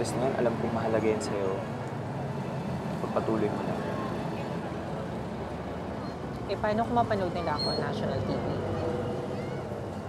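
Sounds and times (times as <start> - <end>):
distant city traffic hum: 0.0 - 10.0.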